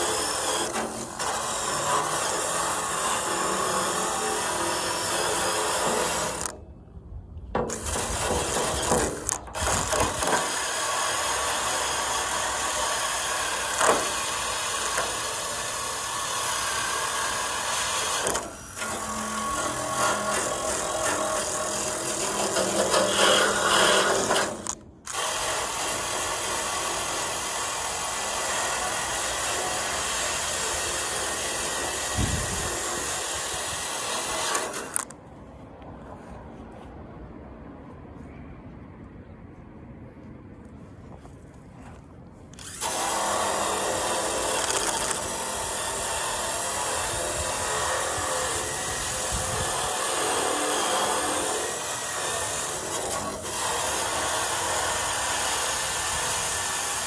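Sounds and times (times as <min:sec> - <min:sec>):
power tool grinding metal: 0:00.0 - 0:06.6, 0:07.6 - 0:35.1, 0:42.6 - 0:57.0.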